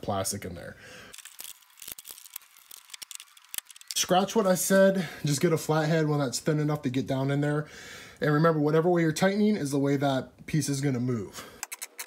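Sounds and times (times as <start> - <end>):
faint handling clicks and rustles: 1.1 - 4.1.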